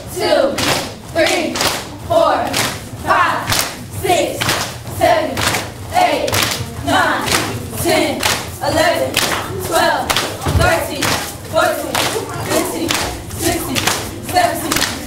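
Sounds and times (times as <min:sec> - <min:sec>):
girls counting aloud together: 0:00.0 - 0:15.0
hand claps: 0:01.6 - 0:01.9, 0:02.5 - 0:02.9, 0:03.5 - 0:03.8, 0:04.4 - 0:04.8, 0:06.3 - 0:06.7, 0:08.2 - 0:08.5, 0:09.1 - 0:15.0.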